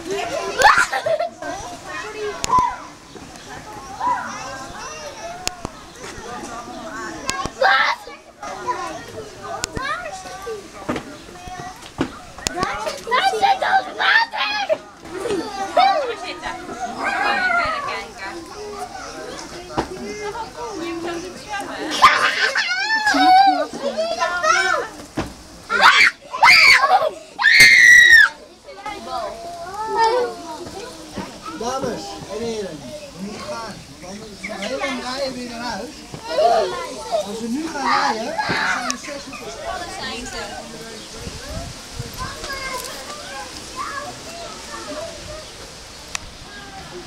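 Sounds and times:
crowd chatter and calls: 0.0 - 47.0
young children shouting and shrieking: 0.0 - 47.0.

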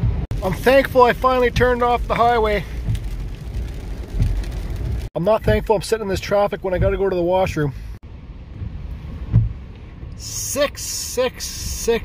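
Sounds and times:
engine and tyres rumbling: 0.0 - 12.0.

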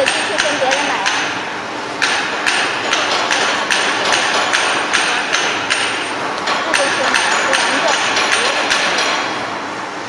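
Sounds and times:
sharp regular machine knocking: 0.0 - 9.6
production line machinery running: 0.0 - 10.0.

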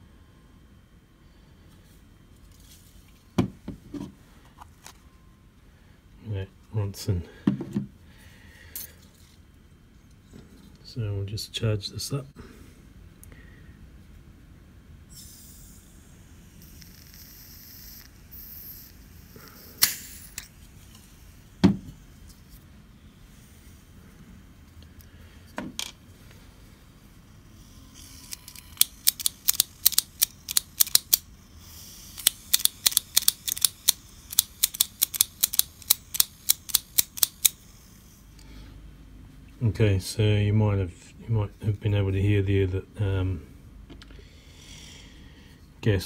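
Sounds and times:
butane hissing into lighter: 15.1 - 20.5
gas leaking hiss: 15.1 - 21.5
lighter flint striker clicking: 32.2 - 37.6.

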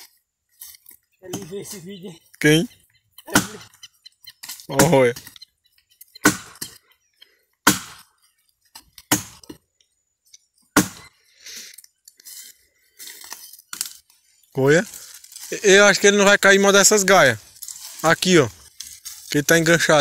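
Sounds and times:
branches rustling: 0.0 - 20.0
sharp blows on wood: 3.2 - 6.8, 7.6 - 8.2, 9.0 - 9.5, 10.7 - 11.2.

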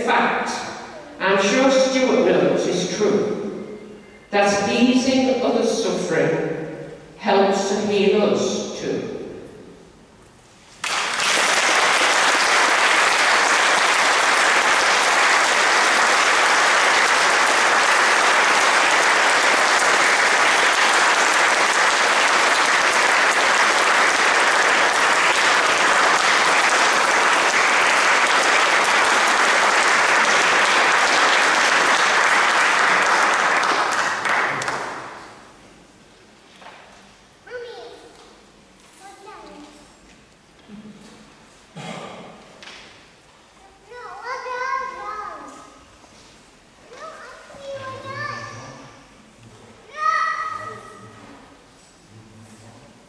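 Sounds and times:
audience applauding: 10.8 - 35.3.

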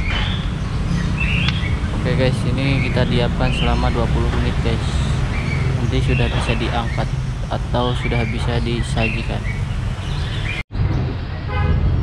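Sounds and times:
steady low rumble: 0.0 - 9.9.

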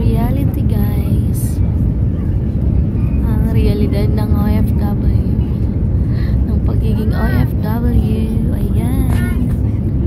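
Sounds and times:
airliner engine rumble: 0.0 - 10.0.

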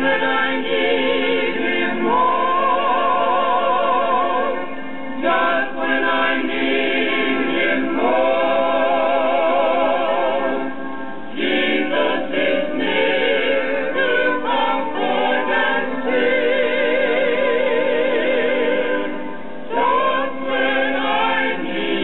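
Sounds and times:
gospel hymn singing from vinyl: 0.0 - 22.0.

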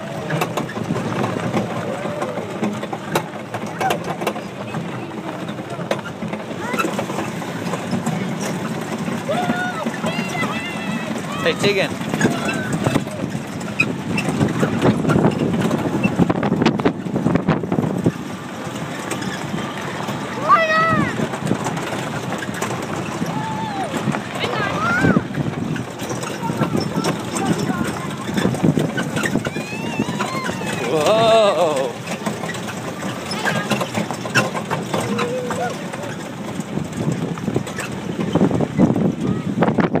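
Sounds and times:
barrel train rumbling: 0.0 - 40.0
wheels knocking and rattling: 0.0 - 40.0
children's voices: 3.5 - 7.4, 9.2 - 13.3, 19.5 - 21.4, 23.2 - 34.1, 34.8 - 36.2, 38.8 - 39.9
wind noise on microphone: 11.2 - 18.5, 20.8 - 31.3, 36.4 - 40.0.

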